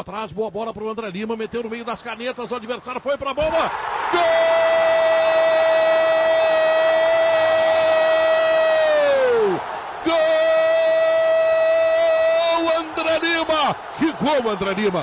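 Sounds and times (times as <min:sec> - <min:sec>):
stadium crowd noise: 0:00.0 - 0:15.0
commentator shouting goal: 0:01.7 - 0:15.0.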